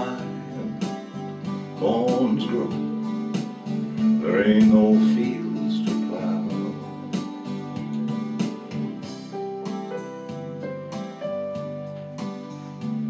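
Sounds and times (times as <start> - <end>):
steady beat: 0.0 - 11.7
keyboard playing slow melody: 0.0 - 13.0.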